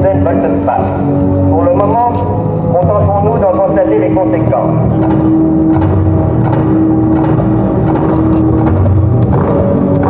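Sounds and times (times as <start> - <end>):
rumbling low drone: 0.0 - 10.0.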